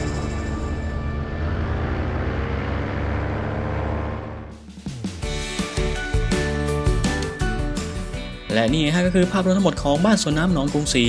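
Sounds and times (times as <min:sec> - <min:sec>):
paramotor engine droning: 0:00.0 - 0:04.7.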